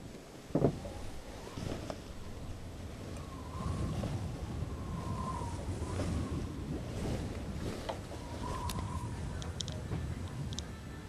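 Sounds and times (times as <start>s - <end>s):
wind rumbling with faint whistle: 0.6s - 11.0s.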